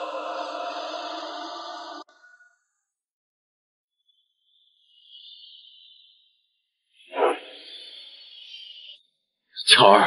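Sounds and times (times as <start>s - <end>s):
whoosh: 7.1s - 7.6s.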